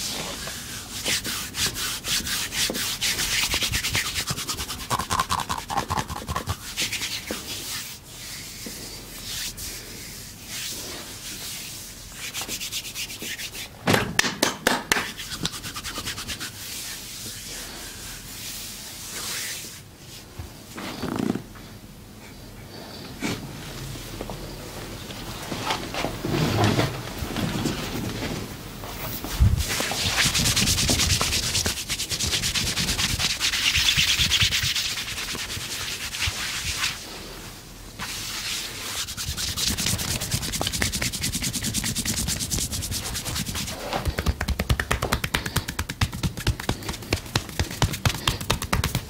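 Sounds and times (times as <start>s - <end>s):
hands rubbing bare skin: 0.0s - 13.7s, 14.9s - 20.2s, 29.1s - 37.4s, 38.0s - 49.0s.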